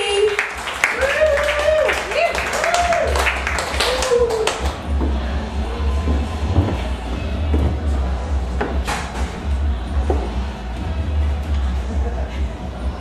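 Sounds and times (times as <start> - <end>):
audience clapping and cheering: 0.0 - 6.2
music with pulsing bass beat: 1.1 - 13.0.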